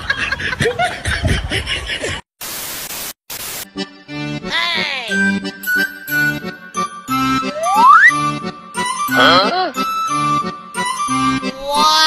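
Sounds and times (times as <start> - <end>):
static hiss: 2.4 - 3.7.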